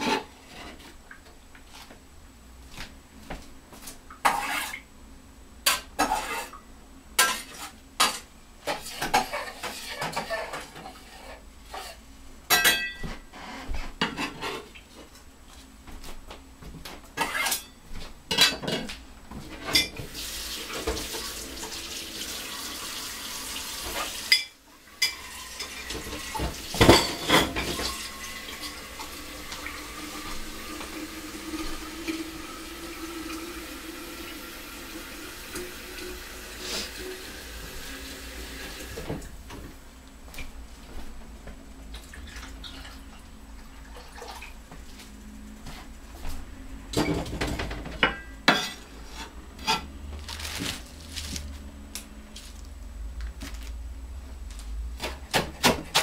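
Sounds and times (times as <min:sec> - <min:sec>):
dishes and cutlery clattering: 0:11.7 - 0:13.2, 0:17.2 - 0:18.9, 0:19.6 - 0:20.0, 0:24.3 - 0:28.0, 0:47.0 - 0:49.9.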